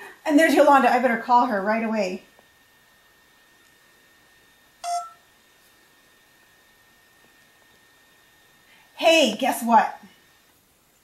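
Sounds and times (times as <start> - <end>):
phone keypad beep: 4.8 - 5.2.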